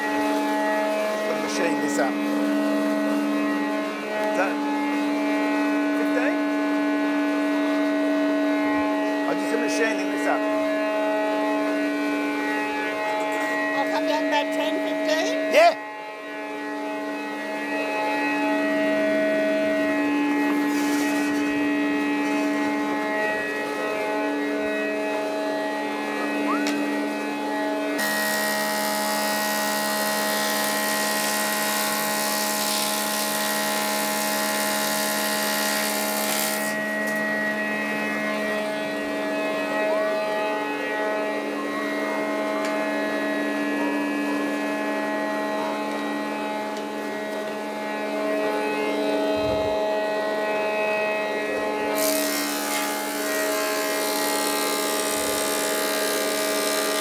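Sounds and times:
planer and dust extractor humming: 0:00.0 - 0:15.6, 0:17.2 - 0:40.2, 0:40.8 - 0:57.0.

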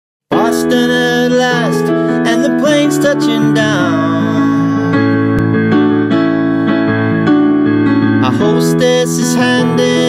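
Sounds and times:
piano playing held chords: 0:00.3 - 0:10.0.

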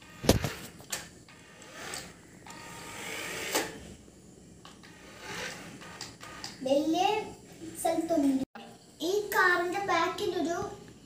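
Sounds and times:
toy car motor whirring: 0:01.3 - 0:03.8, 0:04.8 - 0:06.6.

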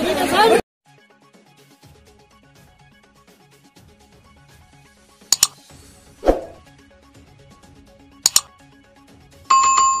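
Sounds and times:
double click: 0:05.3 - 0:05.6, 0:08.2 - 0:08.5.

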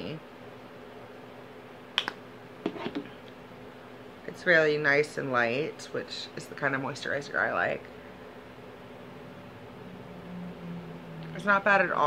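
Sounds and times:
sharp click: 0:02.0 - 0:02.2.

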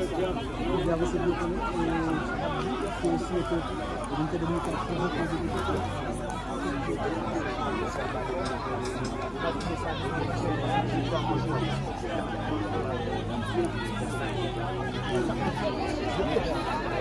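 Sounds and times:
crowd chatter: 0:00.0 - 0:17.0.

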